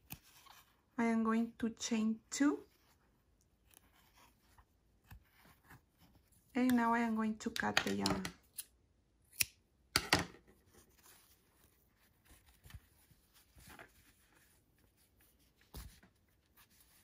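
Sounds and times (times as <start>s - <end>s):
scissors snipping yarn: 0.0s - 0.6s, 9.3s - 9.6s
rustling of yarn and fabric: 0.0s - 7.1s, 10.4s - 17.0s.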